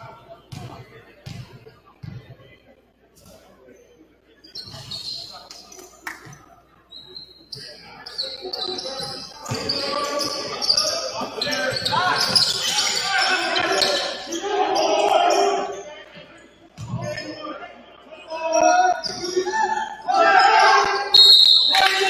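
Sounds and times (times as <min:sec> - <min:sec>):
sneaker squeaks: 0:03.2 - 0:15.9, 0:18.5 - 0:19.6
people shouting: 0:11.4 - 0:15.7, 0:18.3 - 0:21.1.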